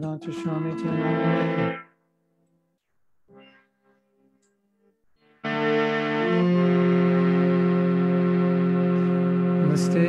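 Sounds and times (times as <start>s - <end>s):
person speaking: 0.0s - 1.8s, 9.6s - 10.0s
electronic keyboard held chords: 0.0s - 10.0s.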